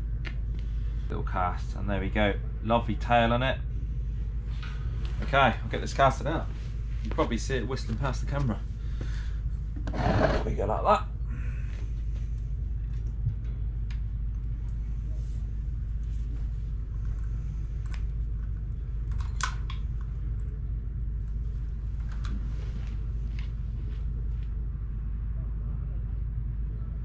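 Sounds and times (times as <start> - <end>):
low rumble: 0.0 - 27.0.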